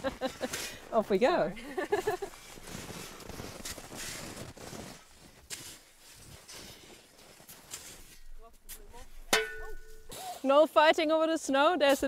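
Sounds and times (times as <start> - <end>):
spades crunching into snow: 0.0 - 10.5.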